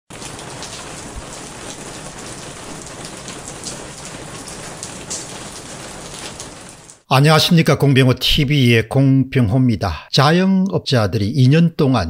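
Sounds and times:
raindrop hits: 0:00.1 - 0:07.1
steady rain hiss: 0:00.1 - 0:07.6.

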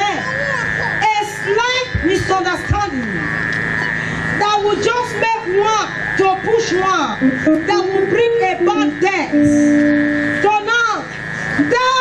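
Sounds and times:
steady high-pitched tone: 0:05.4 - 0:12.0.

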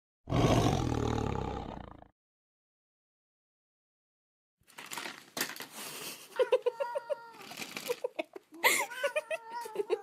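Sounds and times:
tiger roar: 0:00.3 - 0:02.1.

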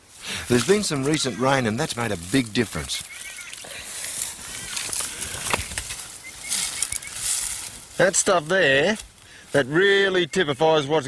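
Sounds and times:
rustle of long grass: 0:00.0 - 0:10.8
birds chirping: 0:00.0 - 0:11.0
twigs snapping underfoot: 0:03.0 - 0:08.0.

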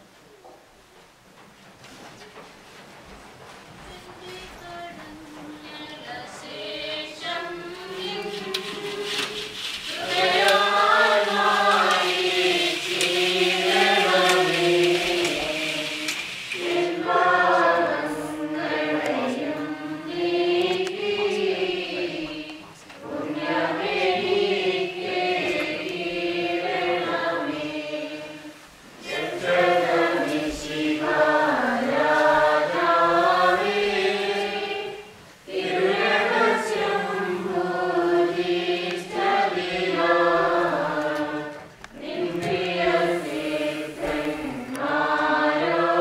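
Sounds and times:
choir singing a hymn: 0:04.0 - 0:46.0.

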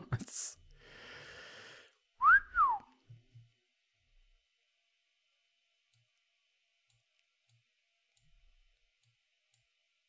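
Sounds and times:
man wolf whistling: 0:02.2 - 0:02.9.

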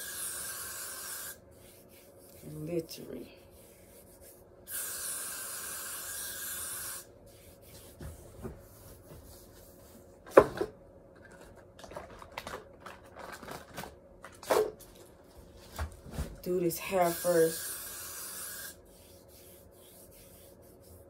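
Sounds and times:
aerosol spray hiss: 0:04.7 - 0:07.1, 0:17.0 - 0:18.8.

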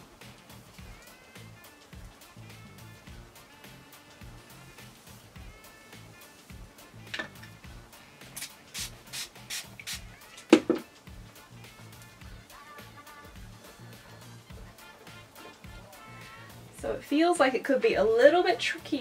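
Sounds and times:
soft background music: 0:00.0 - 0:19.0
handling knock: 0:07.0 - 0:07.6, 0:10.5 - 0:10.9.

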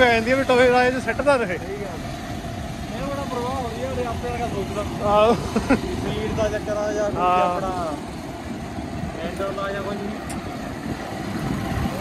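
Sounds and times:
riders talking: 0:00.0 - 0:12.0
wind and road noise rumble: 0:00.0 - 0:12.0.

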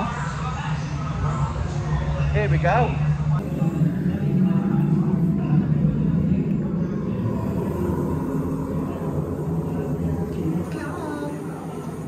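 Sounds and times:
low rumble of ambient noise: 0:00.1 - 0:12.0.

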